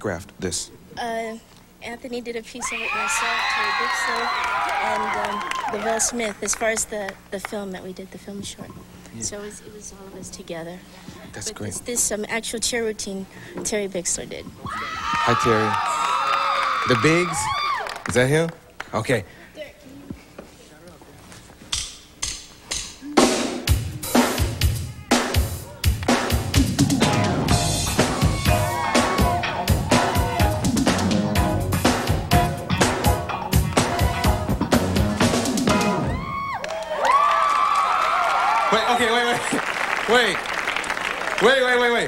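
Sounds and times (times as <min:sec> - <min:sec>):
applause: 0:03.4 - 0:07.2, 0:15.2 - 0:18.9, 0:36.5 - 0:42.0
band playing: 0:21.8 - 0:36.4.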